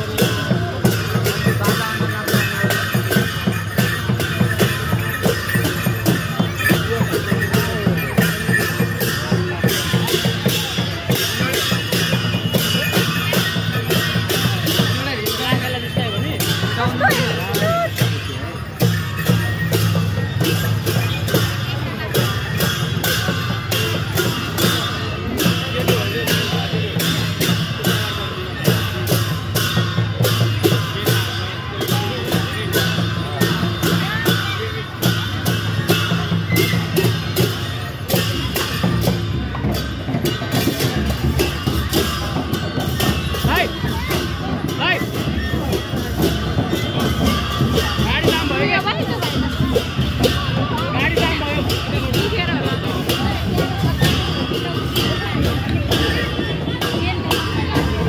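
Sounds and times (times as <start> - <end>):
barrel drums beating: 0.0 - 58.0
crowd chatter: 0.0 - 58.0
hand cymbals clashing: 0.0 - 58.0.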